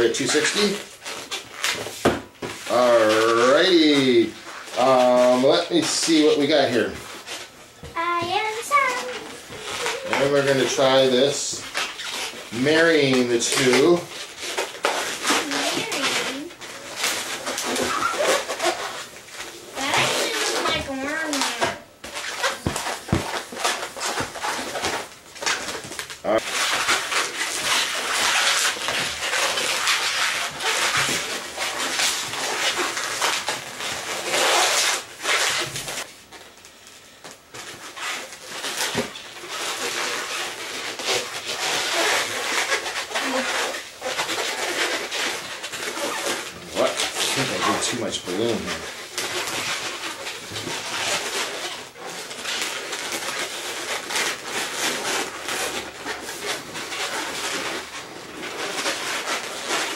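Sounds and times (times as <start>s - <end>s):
balloons squeaking and rubbing: 0.0s - 59.9s.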